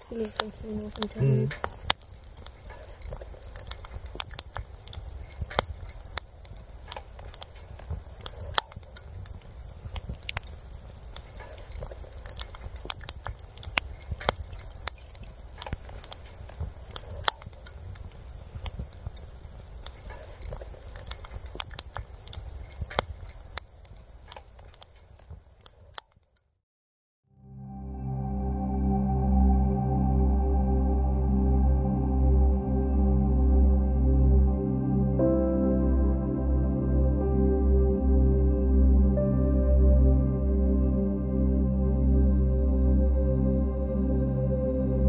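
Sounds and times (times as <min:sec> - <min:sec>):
campfire crackling and popping: 0:00.0 - 0:26.5.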